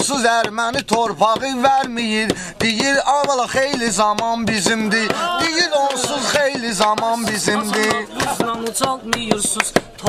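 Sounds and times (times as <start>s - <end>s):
people singing: 0.0s - 10.0s
sharp percussive clicks: 5.4s - 10.0s.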